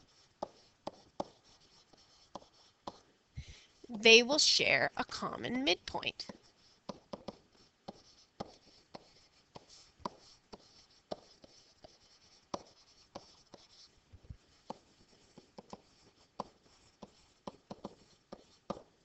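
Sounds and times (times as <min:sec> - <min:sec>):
stylus writing on tablet: 0:00.0 - 0:19.0.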